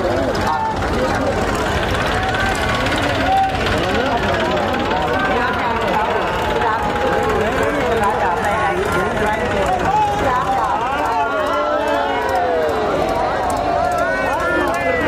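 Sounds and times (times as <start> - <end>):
crowd talking and calling out: 0.0 - 15.0
vehicle engines rumbling: 0.0 - 15.0.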